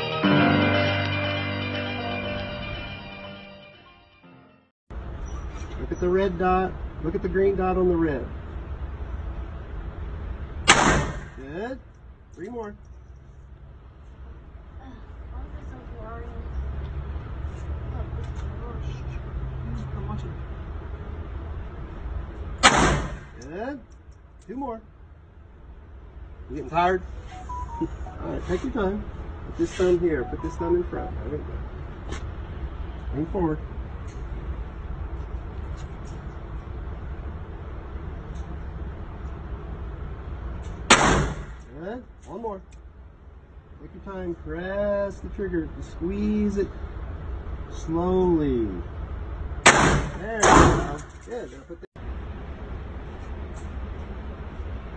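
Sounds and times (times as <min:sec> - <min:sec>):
low hum: 0:04.9 - 0:41.9
low background rumble: 0:04.9 - 0:54.9
handgun shot with echo: 0:10.7 - 0:11.3, 0:22.6 - 0:23.2, 0:40.9 - 0:41.5, 0:49.7 - 0:50.9.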